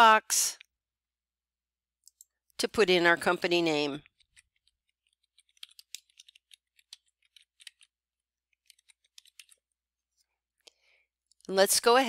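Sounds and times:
faint typing on keyboard: 3.9 - 9.8.

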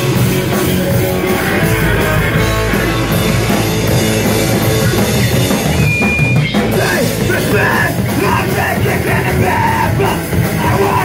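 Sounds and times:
bass guitar: 0.0 - 11.0
distorted electric guitar: 0.0 - 11.0
drums: 0.0 - 11.0
person yelling into microphone: 6.8 - 11.0.

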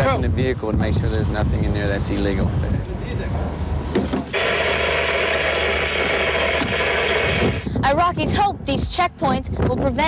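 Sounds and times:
rushing mechanical noise: 4.2 - 7.9.

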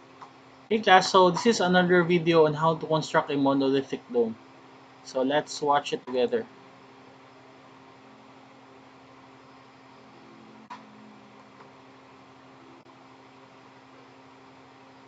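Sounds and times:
room tone hum and hiss: 0.0 - 15.0.

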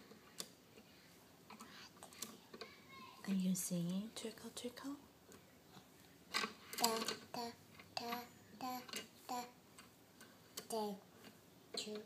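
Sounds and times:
toddler singing: 6.8 - 9.6, 10.7 - 11.0.

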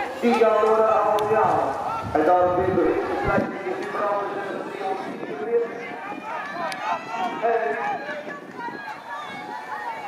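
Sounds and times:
people talking and calling: 0.0 - 10.0.

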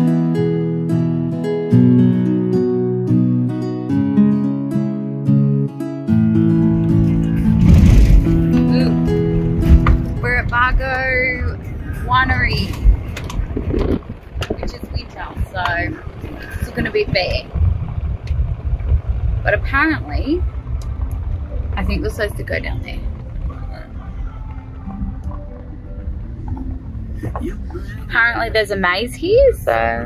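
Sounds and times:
plucked-string music: 0.0 - 30.0
road and wind noise in car: 6.2 - 30.0.

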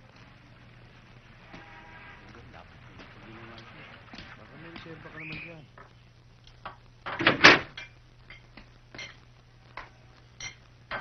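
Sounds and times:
door banging shut: 7.1 - 7.7
plate and spoon clinking: 7.7 - 9.2, 10.4 - 11.0.

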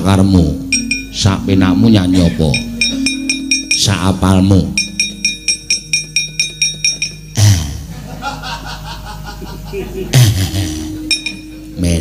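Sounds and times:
gamelan playing: 0.0 - 8.3, 10.7 - 12.0.

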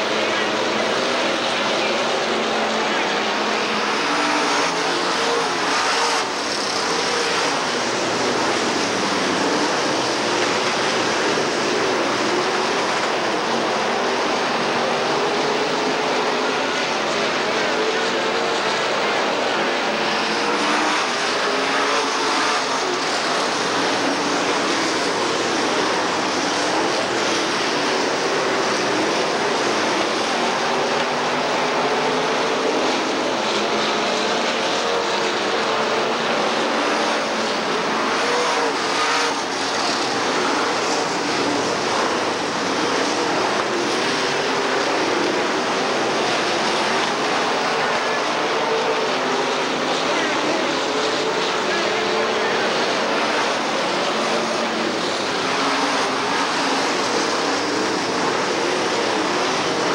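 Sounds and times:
race car engines roaring: 0.0 - 59.9.

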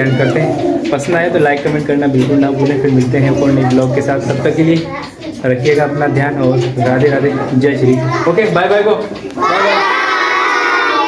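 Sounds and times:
children shouting in chorus: 9.4 - 11.0.

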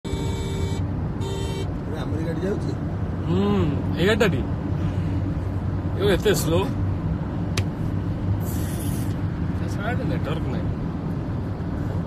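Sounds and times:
horn blasts: 0.0 - 1.8
road traffic rumble: 0.0 - 12.0.

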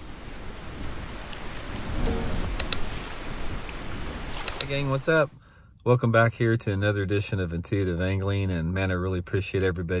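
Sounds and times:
rushing water: 0.0 - 5.4
sharp clicks: 4.4 - 4.8.

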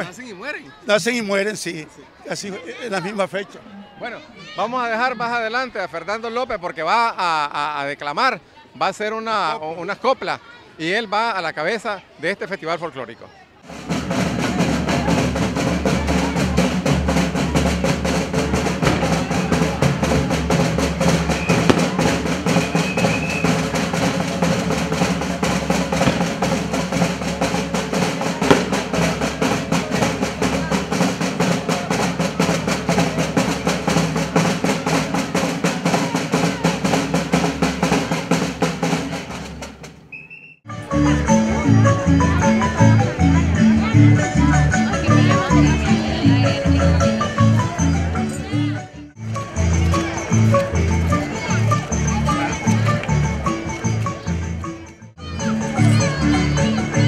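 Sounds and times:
marching bass and snare drums: 13.7 - 40.1, 49.2 - 54.0.

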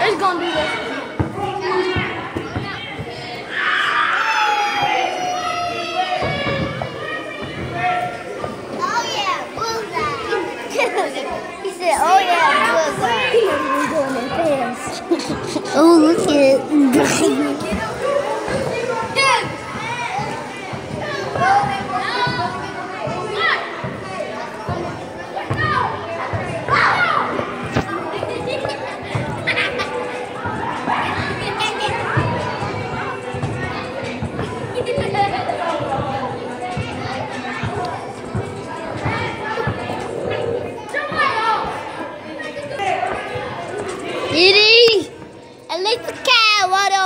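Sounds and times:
children shouting and squealing: 0.0 - 47.0.

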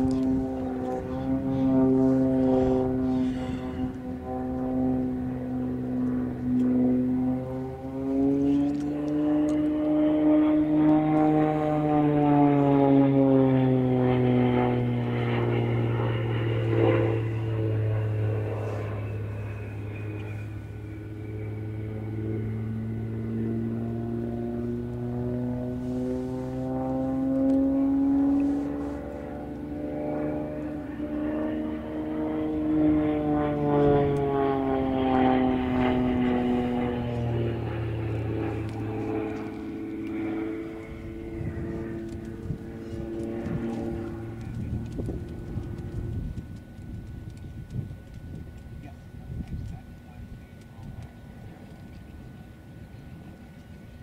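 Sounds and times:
propeller plane engine: 0.0 - 54.0.

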